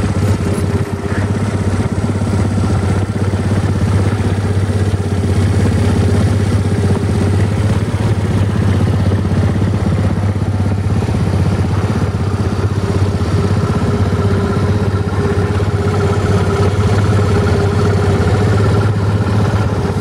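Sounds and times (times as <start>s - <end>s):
scooter engine idling: 0.0s - 20.0s.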